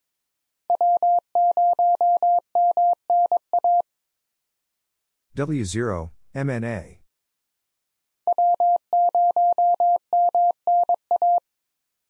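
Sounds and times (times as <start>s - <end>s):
morse code tone: 8.3s - 11.4s.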